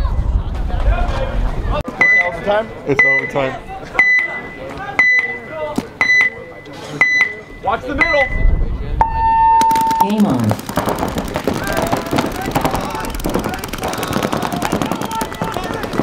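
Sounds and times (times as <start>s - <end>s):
short high beeps: 2.0s - 2.4s, 4.0s - 10.4s.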